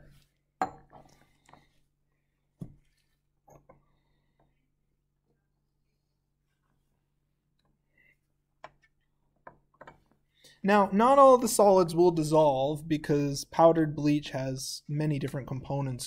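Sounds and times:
labware knocks and taps: 8.6s - 10.2s.

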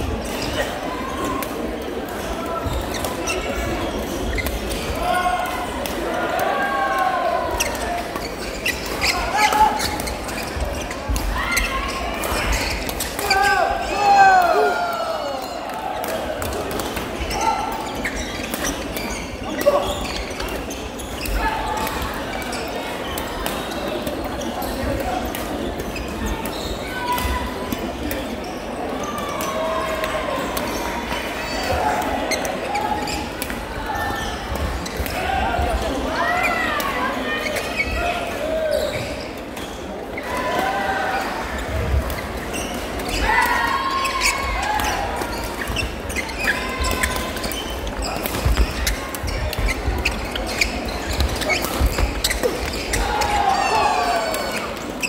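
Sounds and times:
echoing indistinct voices: 0.0s - 55.0s
footfalls on court floor: 45.6s - 53.6s.

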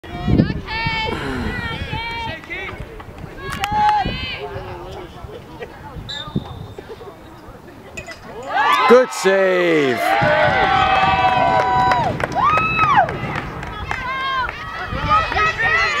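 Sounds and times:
girls calling and shouting: 0.1s - 2.5s, 3.3s - 4.7s, 13.0s - 16.0s.

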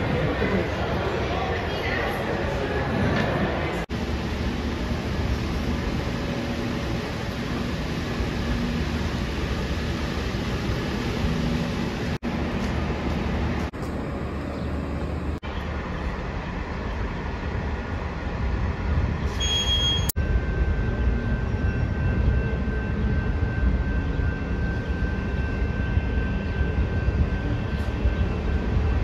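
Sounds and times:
bus engines rumbling: 0.0s - 20.2s.

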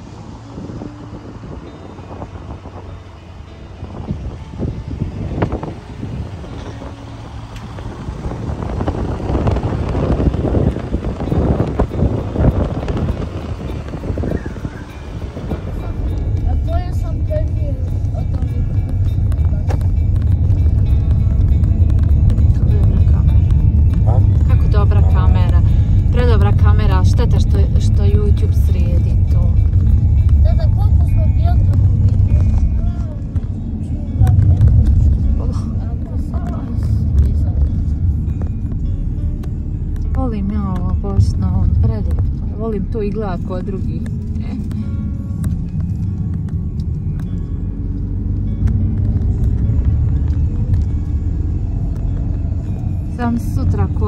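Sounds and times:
car engine and road rumble: 0.0s - 54.0s
wind buffeting microphone: 0.0s - 54.0s.

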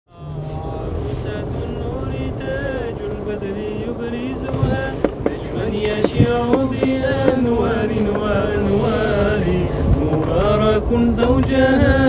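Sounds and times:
layered voices holding long notes: 0.1s - 12.0s
low rumble: 0.1s - 12.0s.

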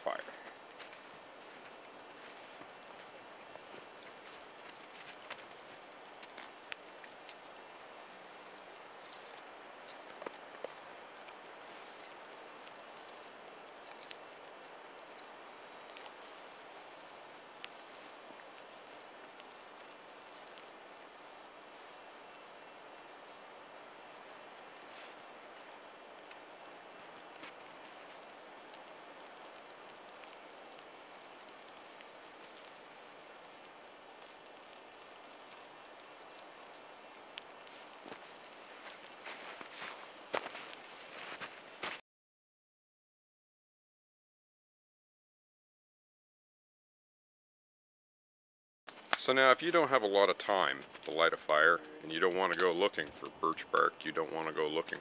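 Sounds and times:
twig fire crackling: 0.0s - 42.0s, 48.9s - 55.0s.

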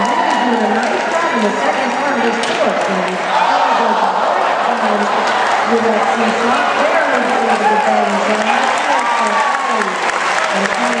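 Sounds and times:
crowd applauding: 0.0s - 11.0s
voices: 0.0s - 11.0s.

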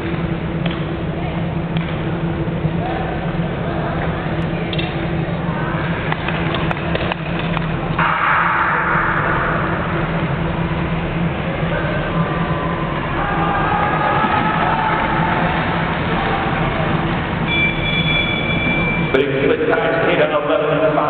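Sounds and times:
low hum of indoor hall: 0.0s - 21.0s.

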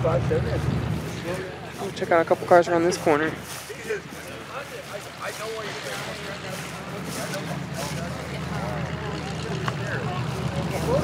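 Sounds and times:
low engine rumble: 0.0s - 11.0s
people talking: 0.0s - 11.0s.

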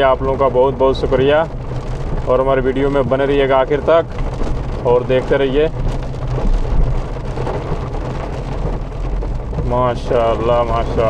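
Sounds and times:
car engine and road hum: 0.0s - 11.0s
rain and tyres hissing on water: 0.0s - 11.0s.

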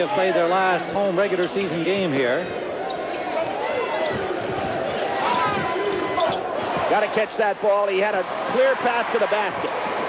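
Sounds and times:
murmur of crowd voices: 0.0s - 10.0s
sneakers squeaking on court: 6.2s - 6.8s.

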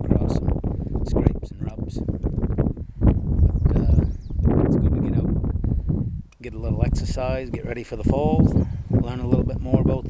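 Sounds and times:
wind buffeting microphone: 0.0s - 10.0s
man talking: 1.1s - 2.1s, 3.6s - 4.1s, 4.7s - 5.4s, 6.4s - 10.0s.

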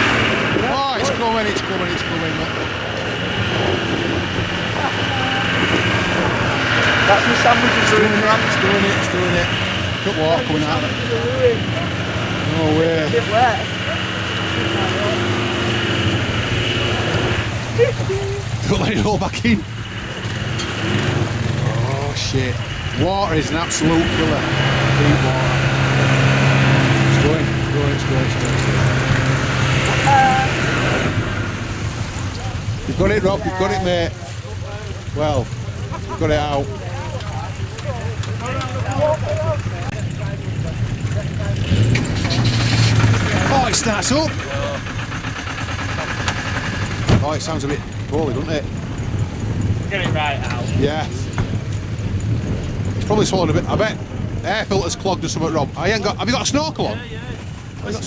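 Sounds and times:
winch droning and whining: 0.0s - 19.0s, 19.6s - 34.0s
diesel engine cranking and starting: 0.0s - 58.0s
indistinct voices: 0.0s - 58.0s.

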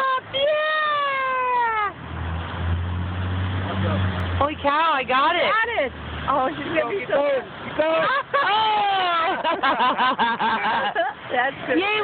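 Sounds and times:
person's high-pitched exclamation: 0.0s - 2.0s.

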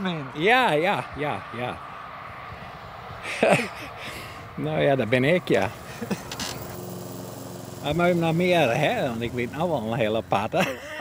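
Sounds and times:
lawn mower engine idling: 3.8s - 11.0s.

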